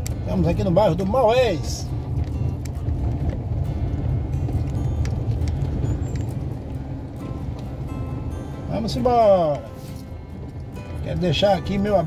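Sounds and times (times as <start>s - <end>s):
car rumble on cobblestones: 0.0s - 12.0s
light rattles: 0.0s - 12.0s.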